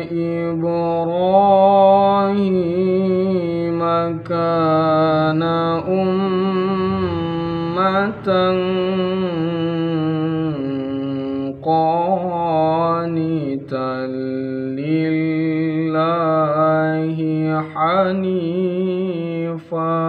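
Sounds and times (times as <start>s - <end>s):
man reciting in melodic chant: 0.0s - 20.0s.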